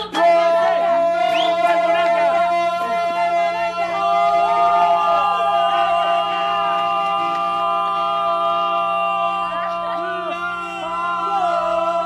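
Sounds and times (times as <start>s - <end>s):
voices singing sustained notes: 0.0s - 12.0s.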